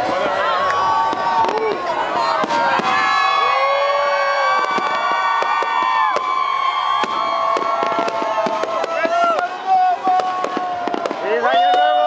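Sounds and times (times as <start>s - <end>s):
crowd cheering and shouting: 0.0s - 12.0s
fireworks bangs and crackles: 0.0s - 12.0s.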